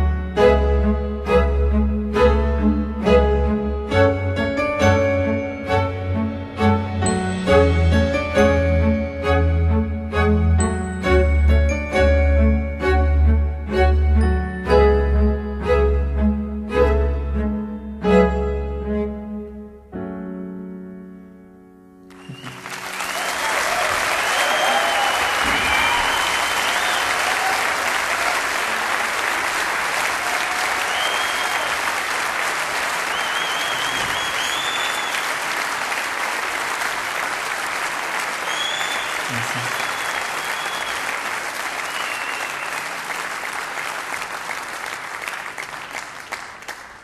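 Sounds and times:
audience cheering: 22.1s - 46.7s
audience applauding: 22.1s - 47.0s.

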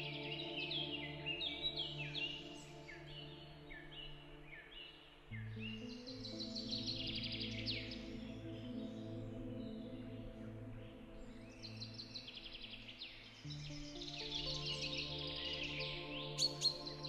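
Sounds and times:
ambient music of sustained chords: 0.0s - 17.0s
birds chirping: 0.0s - 17.0s.

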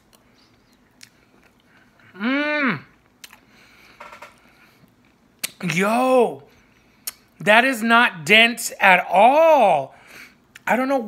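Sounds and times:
faint chewing: 0.0s - 2.2s, 2.8s - 5.6s.

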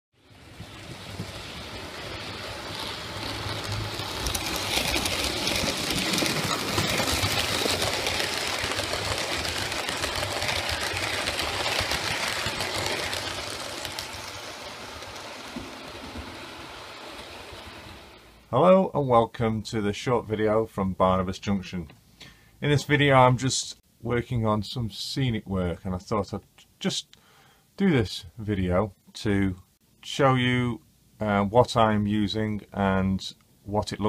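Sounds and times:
model train running on rails: 0.2s - 18.6s.

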